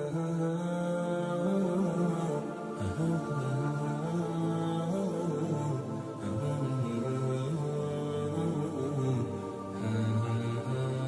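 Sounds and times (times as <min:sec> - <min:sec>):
low sustained male chant: 0:00.0 - 0:11.0.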